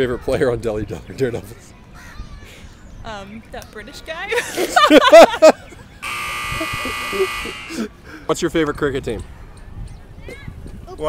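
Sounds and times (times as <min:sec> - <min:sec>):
harsh wrong-answer buzzer: 0:06.0 - 0:07.8.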